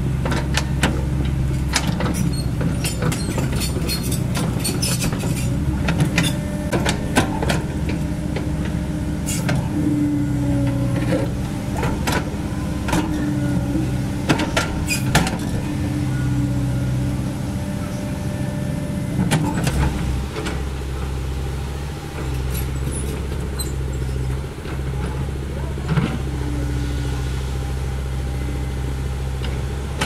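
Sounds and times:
excavator diesel engine running: 0.0s - 30.0s.

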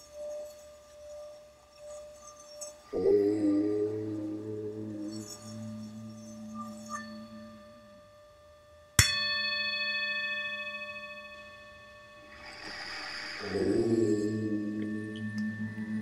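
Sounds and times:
singing bowl ringing: 0.0s - 3.0s, 4.2s - 16.0s
low wavering tone: 0.0s - 16.0s
soft rushing swell: 12.0s - 16.0s.

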